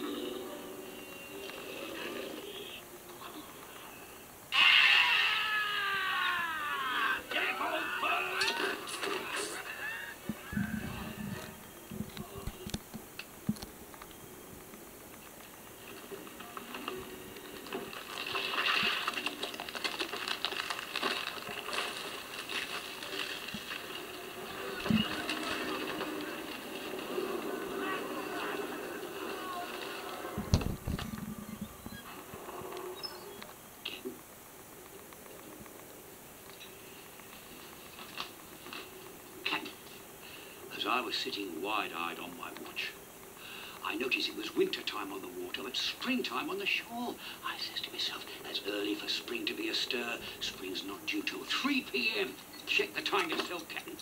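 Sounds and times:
low quiet film soundtrack: 0.0 - 54.0
man crying out loudly: 4.6 - 8.5
ice cracking and snapping: 17.6 - 24.2.

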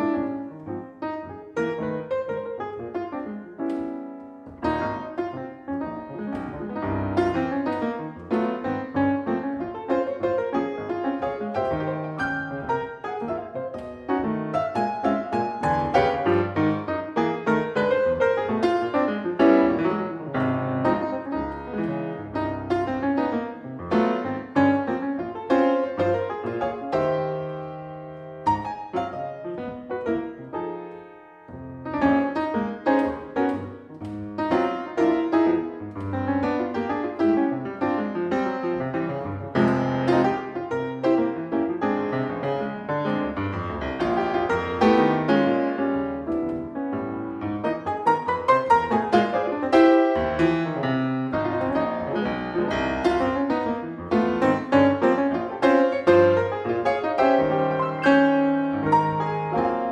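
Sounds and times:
solo jazz piano: 0.0 - 59.9.

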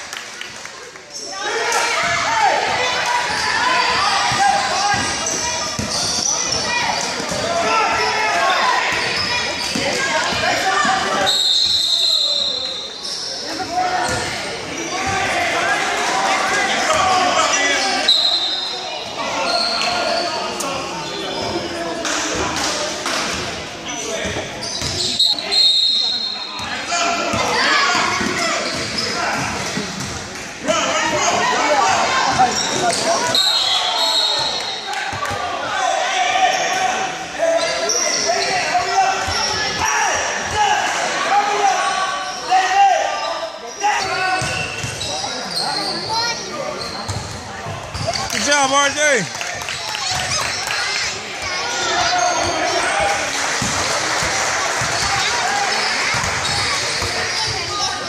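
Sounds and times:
people talking and shouting: 0.0 - 58.0
basketball bouncing on court: 24.8 - 25.0, 47.1 - 48.2, 56.1 - 57.6.

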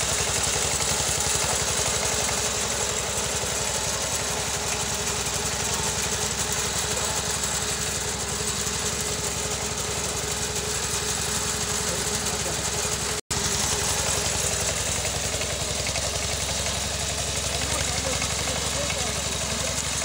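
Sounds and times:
small engine running: 0.0 - 20.0.

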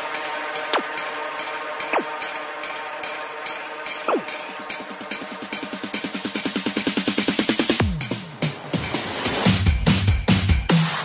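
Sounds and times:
hard trance music: 0.0 - 11.0.

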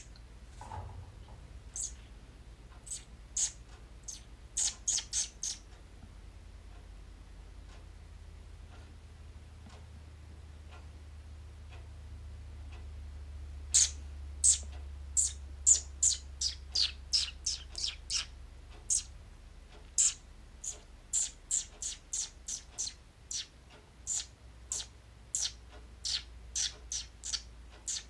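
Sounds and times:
person chirping through lips: 2.8 - 5.6, 13.7 - 18.3, 18.9 - 19.1, 20.0 - 23.5, 24.1 - 28.0.

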